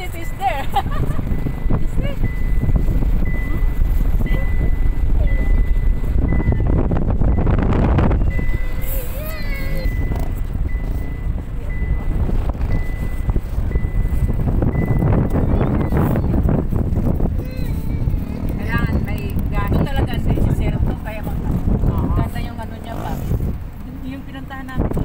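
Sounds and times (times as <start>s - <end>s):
quad bike engine: 0.0s - 25.0s
wind buffeting microphone: 0.0s - 25.0s
faint high beep: 1.4s - 9.0s, 9.7s - 16.4s.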